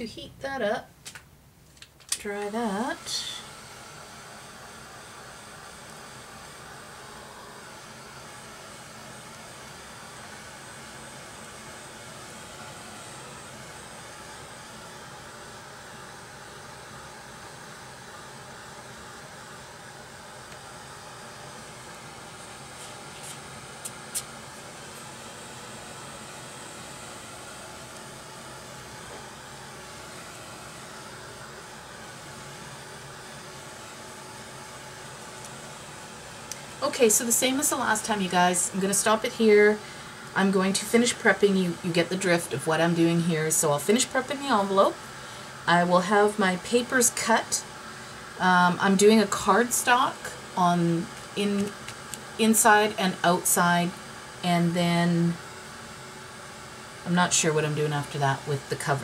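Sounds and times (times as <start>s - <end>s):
heat tool blowing: 2.2s - 59.0s.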